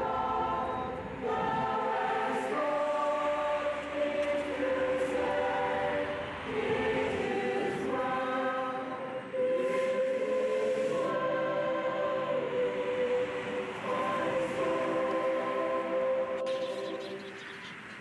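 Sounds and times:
slow choral music: 0.0 - 18.0.

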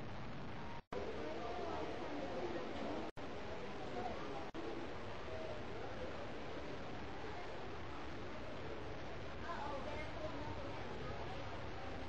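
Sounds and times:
faint voices talking: 0.9 - 12.0.

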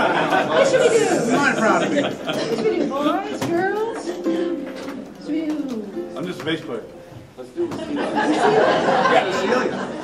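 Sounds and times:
low chatter: 0.0 - 10.0
held musical notes: 0.8 - 7.6.

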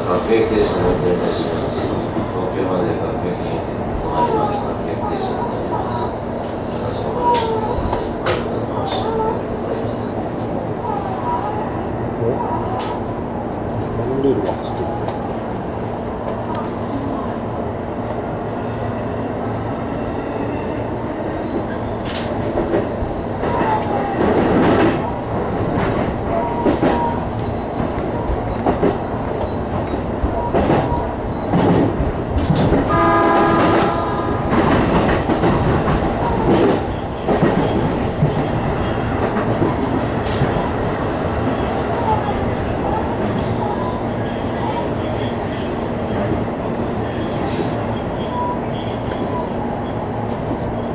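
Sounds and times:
train running noise: 0.0 - 50.9.

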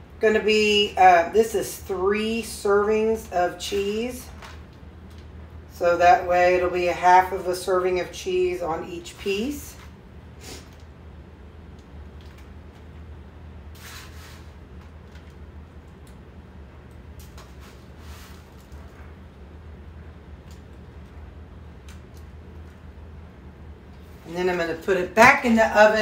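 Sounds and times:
low room hum: 0.0 - 26.0
cheese sprinkling rustles: 13.7 - 15.6, 17.2 - 19.2.

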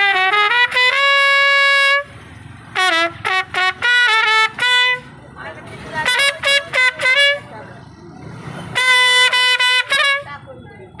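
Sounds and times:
solo trumpet: 0.0 - 2.1, 2.8 - 5.0, 8.8 - 10.3
street traffic noise: 0.0 - 11.0.

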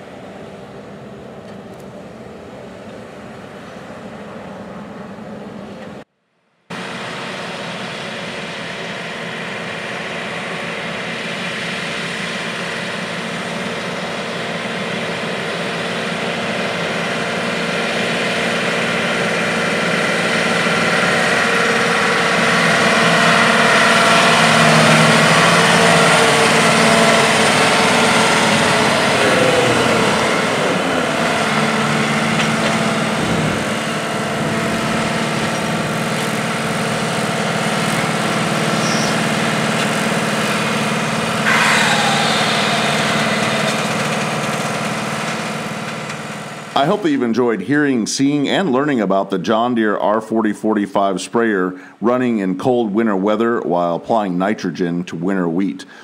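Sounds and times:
high whine falling in pitch: 6.7 - 47.4
diesel engine driving past: 6.8 - 47.2.

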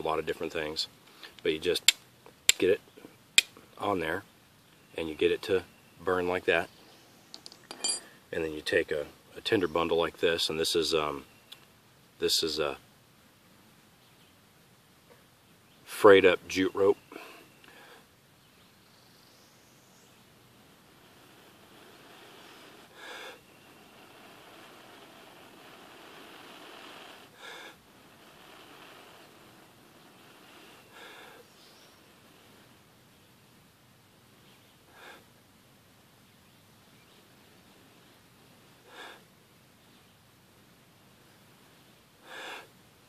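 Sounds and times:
soft breaths blown into ember: 17.0 - 18.2, 20.7 - 32.9, 42.2 - 42.8
short sharp breath: 22.9 - 23.4, 27.3 - 27.8.

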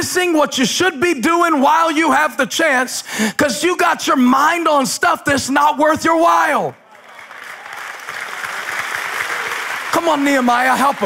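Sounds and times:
audience applause: 6.8 - 11.0.

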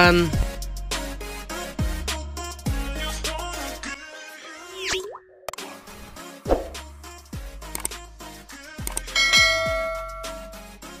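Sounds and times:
background music with kick drum: 0.0 - 1.1, 1.8 - 3.5, 6.4 - 8.1, 8.8 - 11.0
bell ding: 9.2 - 10.6.

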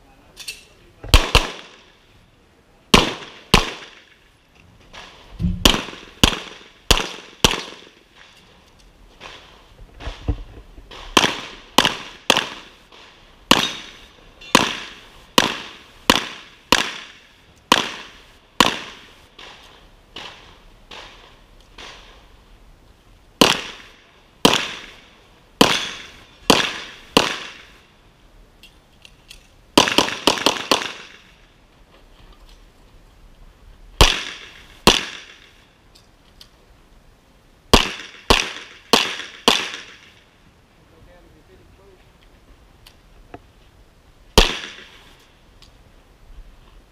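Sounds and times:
pistol shots with echo: 1.1 - 1.9, 2.9 - 4.1, 5.6 - 8.0, 11.1 - 12.7, 13.5 - 19.6, 23.4 - 25.0, 25.6 - 27.7, 29.8 - 31.3, 34.0 - 35.5, 37.7 - 40.1, 44.4 - 45.0.

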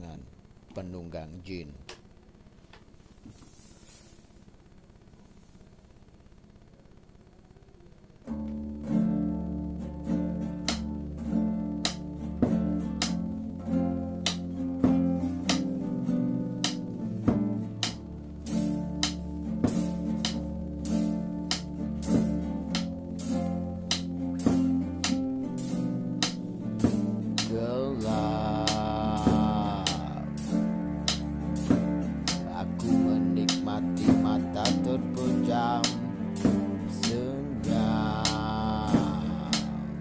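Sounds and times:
acoustic guitar chords: 8.2 - 40.0
guitar with sliding notes: 8.2 - 40.0
held low bass line: 8.5 - 40.0
drumstick clicks: 13.0 - 13.2, 15.4 - 15.8, 16.6 - 16.9, 19.0 - 19.2, 20.2 - 20.5, 21.5 - 21.7, 22.7 - 22.9, 23.8 - 24.4, 25.0 - 25.2, 27.4 - 27.6, 31.1 - 31.3.

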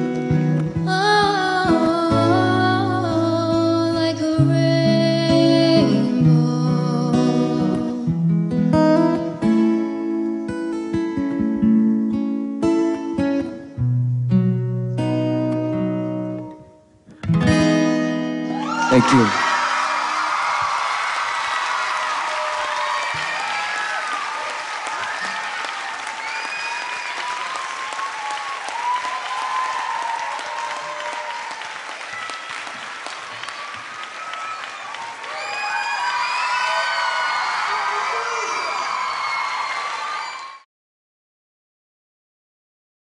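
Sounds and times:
audience applauding: 18.5 - 40.6
shouts and whoops: 18.5 - 40.6.

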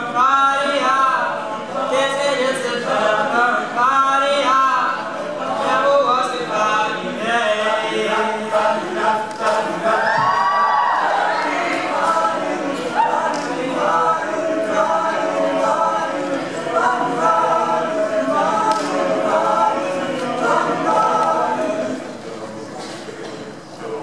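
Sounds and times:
a cappella group singing: 0.0 - 24.0.

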